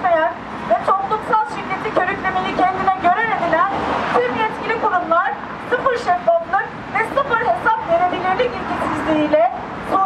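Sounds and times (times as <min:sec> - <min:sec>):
woman reading aloud: 0:00.0 - 0:10.0.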